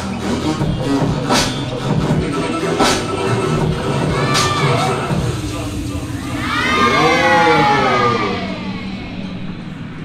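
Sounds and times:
dance music: 0.0s - 10.0s
audience cheering: 3.9s - 5.3s, 6.1s - 9.4s.

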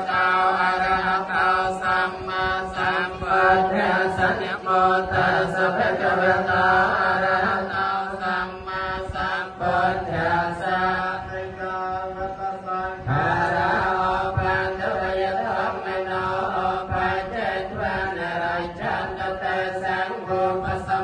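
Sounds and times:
voices chanting on held pitch: 0.0s - 21.0s.

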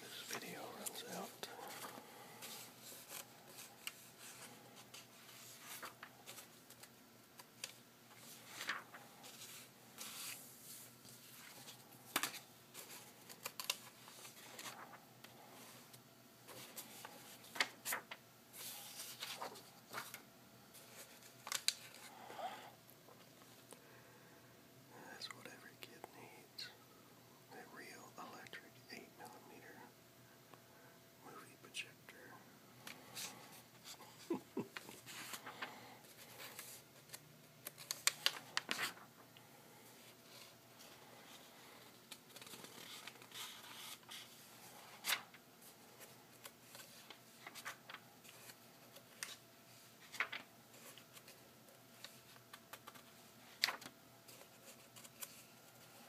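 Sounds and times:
person whispering: 0.0s - 2.0s, 24.9s - 26.8s, 27.5s - 30.0s, 31.2s - 32.5s
paper rustling and crackling: 0.0s - 22.1s, 32.8s - 39.2s, 39.9s - 56.0s
small paper ticks: 13.2s - 13.9s, 21.4s - 22.0s, 36.4s - 38.8s, 42.1s - 44.2s, 52.0s - 55.4s.

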